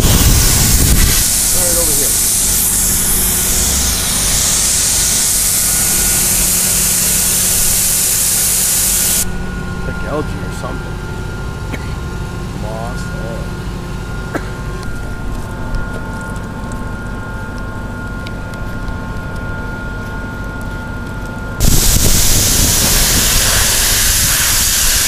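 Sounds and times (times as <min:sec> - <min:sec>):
water spraying hiss: 0:00.0 - 0:09.2, 0:21.6 - 0:25.0
motor hum: 0:00.0 - 0:25.0.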